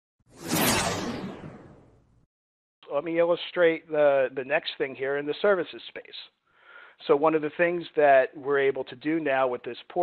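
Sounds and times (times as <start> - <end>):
whoosh swish: 0.3 - 2.0.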